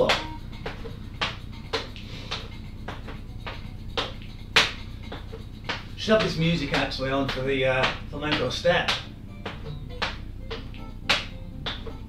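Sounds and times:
footsteps on aerobics step: 0.0s - 12.0s.

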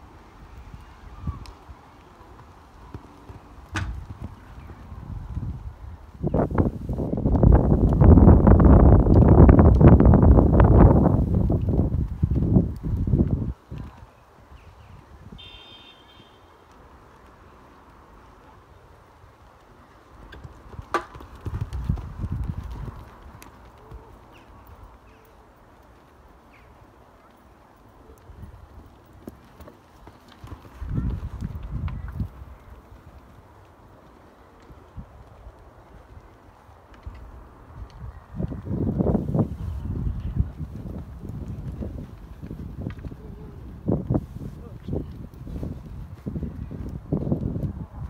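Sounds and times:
horse hoofbeats: 2.0s - 5.7s, 19.9s - 26.2s, 28.0s - 36.5s
horse hoofbeats on ground: 2.0s - 14.2s, 19.6s - 26.7s, 27.3s - 48.0s.

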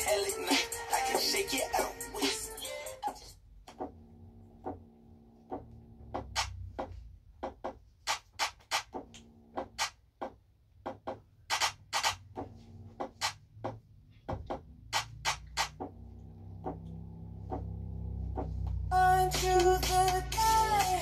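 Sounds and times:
quiet dance music: 0.0s - 4.0s, 5.4s - 21.0s.

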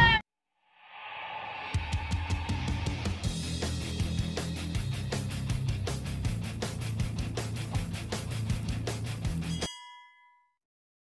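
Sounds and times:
rock music with guitar: 2.2s - 9.7s.

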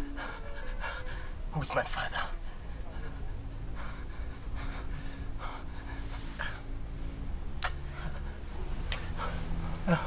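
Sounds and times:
man speaking: 1.5s - 2.4s.

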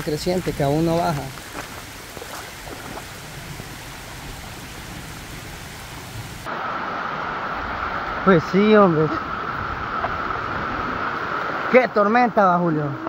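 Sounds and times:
river rushing over rocks: 0.0s - 12.7s
rain falling: 0.0s - 13.0s.

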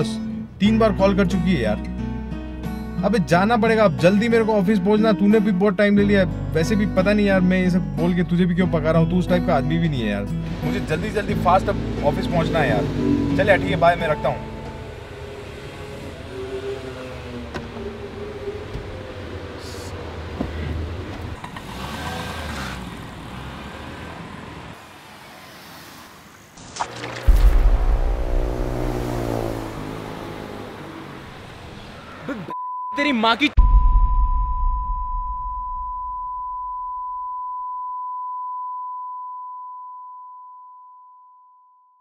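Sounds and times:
car engine hum from cabin: 27.0s - 32.5s
low rumble: 27.2s - 30.8s, 33.6s - 36.9s
electronic beep tone: 32.6s - 42.0s.

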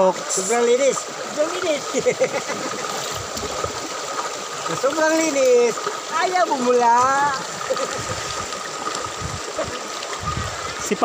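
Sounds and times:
river running over rocks: 0.0s - 11.0s.

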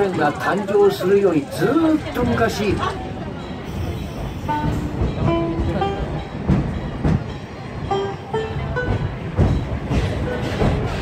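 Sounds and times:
train carriages rumbling on track: 0.0s - 11.0s.

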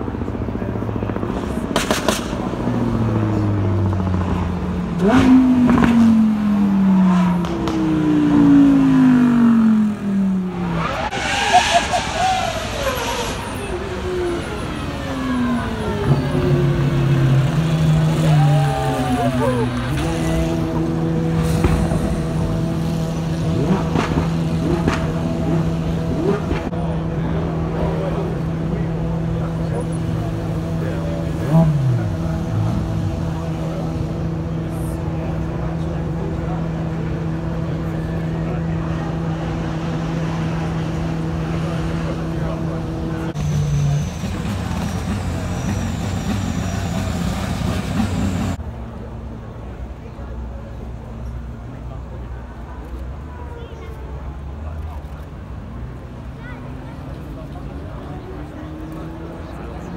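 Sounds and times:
engine running at steady pitch: 0.0s - 54.1s
supercar engines accelerating: 0.0s - 59.9s.

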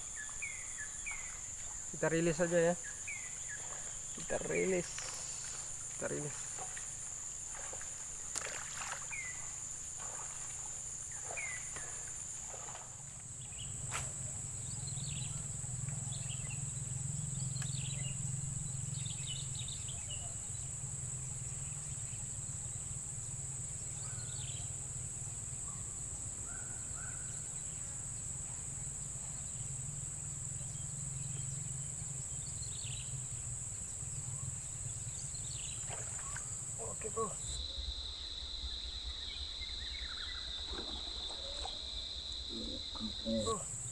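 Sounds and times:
high-pitched insect chorus: 0.0s - 43.9s.

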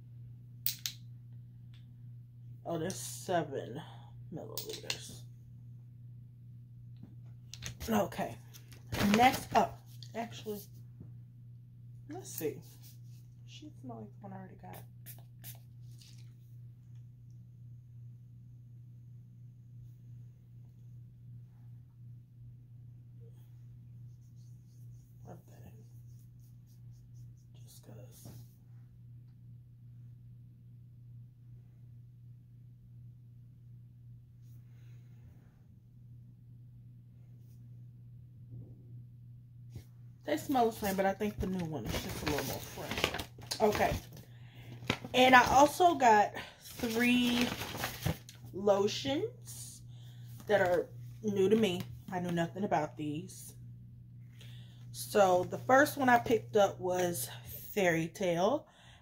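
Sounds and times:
low room hum: 0.0s - 59.0s
hand rubbing skin: 24.0s - 27.6s.

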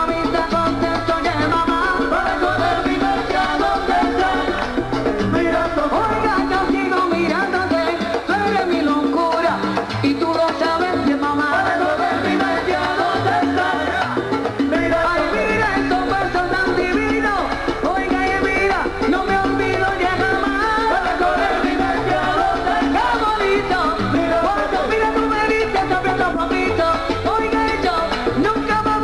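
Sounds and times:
percussion: 0.0s - 29.0s
salsa band playing: 0.0s - 29.0s.

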